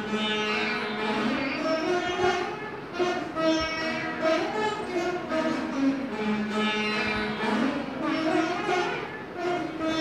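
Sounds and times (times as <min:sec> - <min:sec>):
plucked string ensemble melody: 0:00.0 - 0:10.0.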